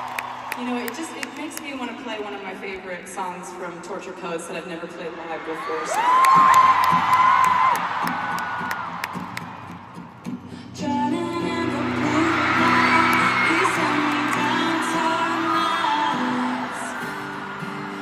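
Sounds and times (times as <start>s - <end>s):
arena crowd cheering and screaming: 0.0s - 2.5s, 5.2s - 18.0s
acoustic guitar chords: 8.1s - 18.0s.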